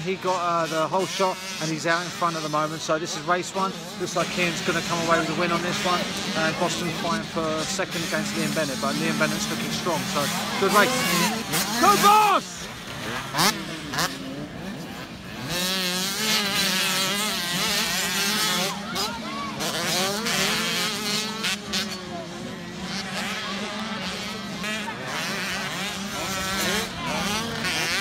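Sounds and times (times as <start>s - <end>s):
motocross bikes revving: 0.0s - 28.0s.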